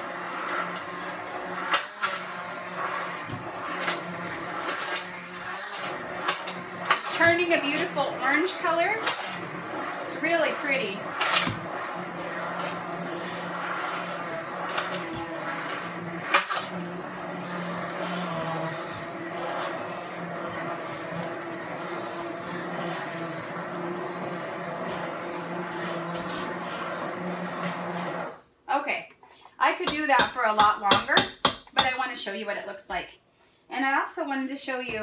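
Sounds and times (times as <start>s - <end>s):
immersion blender churning soup: 0.0s - 28.5s, 29.2s - 32.0s.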